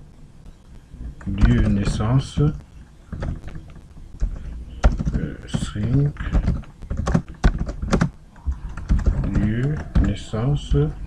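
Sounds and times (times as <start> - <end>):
computer keyboard keystrokes: 4.2 - 5.2, 5.9 - 10.1.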